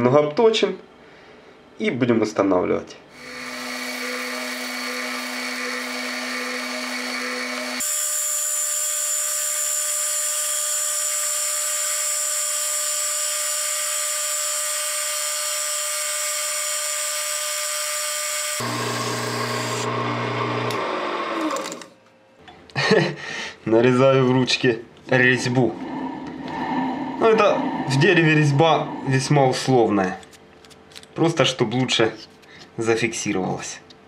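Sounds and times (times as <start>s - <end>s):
lathe motor hum: 3.2s - 8.7s, 16.0s - 21.9s, 25.5s - 29.6s
high hiss of cutting tool: 3.2s - 18.6s.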